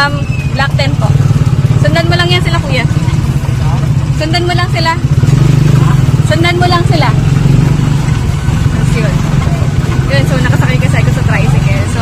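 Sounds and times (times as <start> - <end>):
motorcycle engine drone: 0.0 - 12.0.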